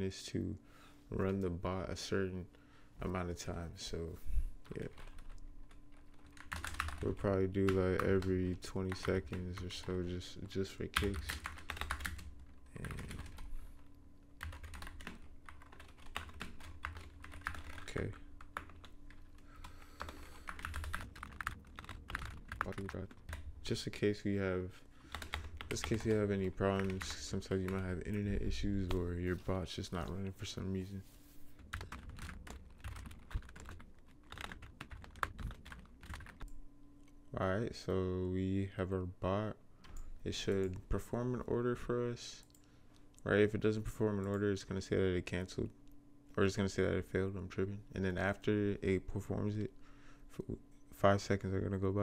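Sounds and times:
computer keyboard typing: 4.6 - 10.0, 10.9 - 13.5, 14.4 - 23.8, 25.1 - 29.1, 31.6 - 36.5.

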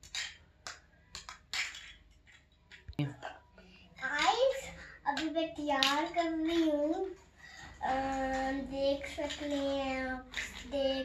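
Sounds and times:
plastic toy pieces clicking: 0.0 - 2.9, 9.0 - 11.0.

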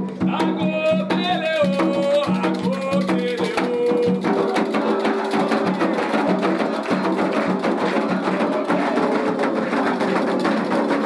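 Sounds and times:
hand drums: 0.0 - 11.0
congregation singing a chant: 3.6 - 11.0.

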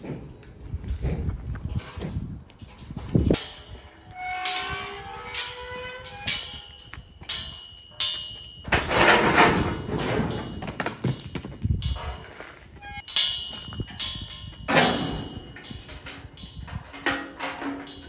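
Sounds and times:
metal clanks and rattles: 0.8 - 18.0.

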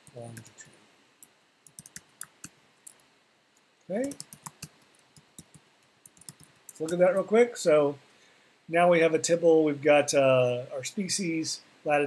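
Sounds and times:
computer keyboard typing: 0.0 - 0.7, 1.6 - 3.0, 3.9 - 7.2.

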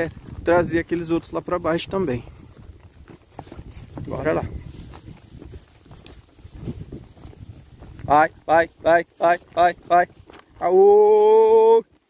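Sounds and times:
horse hooves walking on dirt trail: 0.0 - 12.0
wind rumbling on microphone: 0.0 - 12.0.

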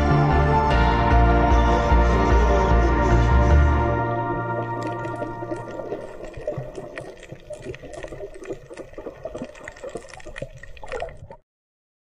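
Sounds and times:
water moving and bubbling: 4.0 - 11.4
underwater clicks and crackles: 4.6 - 11.4.

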